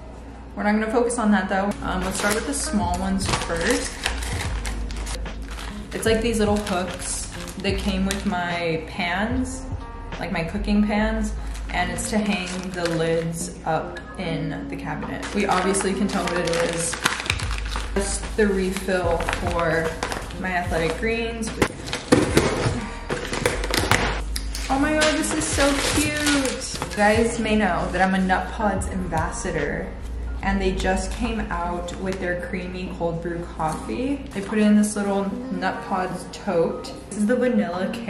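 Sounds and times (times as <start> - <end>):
background music: 0.0 - 38.0
packaging rustling and crinkling: 1.7 - 8.3, 11.4 - 13.4, 15.2 - 21.0, 21.6 - 27.4
cardboard box crackling and tapping: 3.3 - 8.3, 15.3 - 18.0, 18.7 - 21.0, 21.6 - 24.2.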